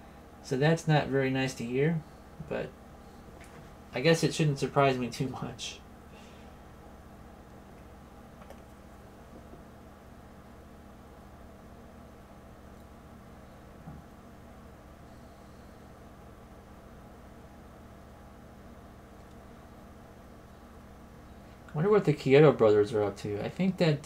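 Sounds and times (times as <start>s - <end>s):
room hum and hiss: 0.0s - 24.0s.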